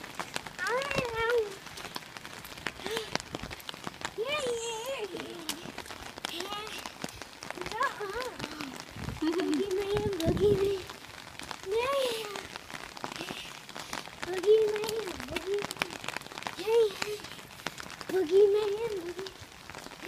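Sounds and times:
rain falling on pavement: 0.0 - 20.0
girl singing wordless tune: 9.5 - 10.9, 14.2 - 16.0, 18.1 - 19.4.

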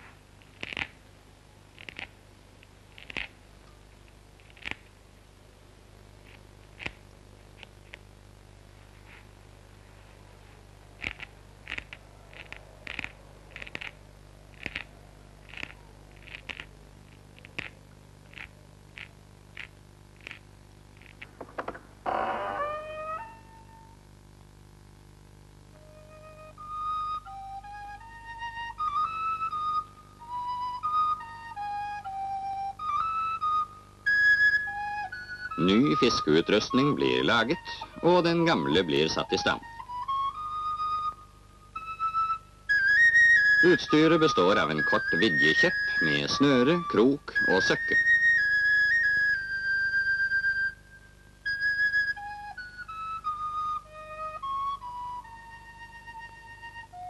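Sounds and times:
slow flute melody: 22.1 - 24.0, 25.7 - 57.0.

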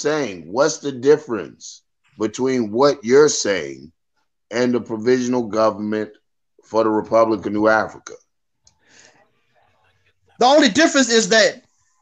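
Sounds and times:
person speaking: 10.3 - 11.7.

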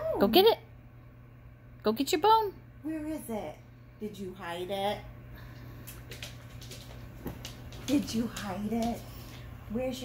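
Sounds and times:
low steady hum: 0.0 - 10.0
dog claws clicking on wooden floor: 5.8 - 9.5.

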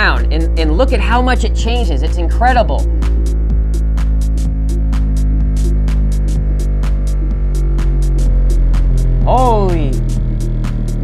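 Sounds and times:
deep bass test tone: 0.0 - 11.0.

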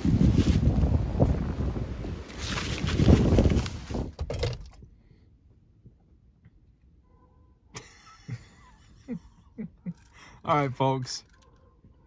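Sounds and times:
wind buffeting microphone: 0.0 - 4.4.

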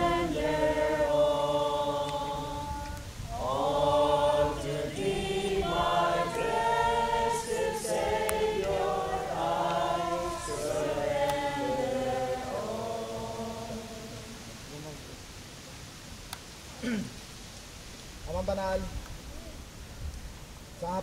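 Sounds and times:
group singing a hymn: 0.0 - 15.0.

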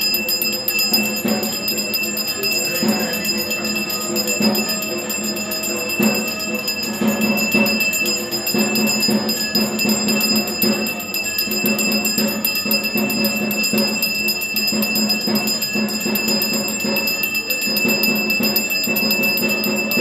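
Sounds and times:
hand bell ringing: 0.0 - 20.0.

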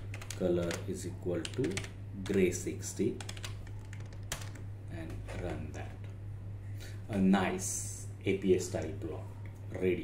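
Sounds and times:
keyboard typing: 0.0 - 2.5, 3.1 - 5.9
low electrical hum: 0.0 - 10.0.

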